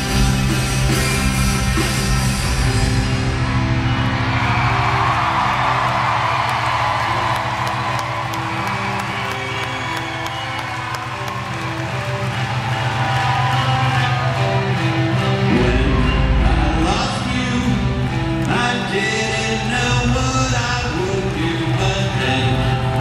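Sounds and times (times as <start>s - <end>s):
bass and drums: 0.0s - 23.0s
crowd cheering: 0.0s - 23.0s.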